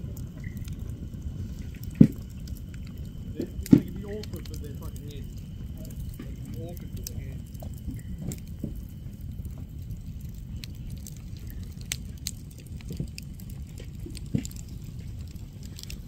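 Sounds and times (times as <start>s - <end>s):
campfire crackling: 0.0s - 16.0s
low rumble: 0.0s - 16.0s
sharp pops: 1.6s - 8.9s.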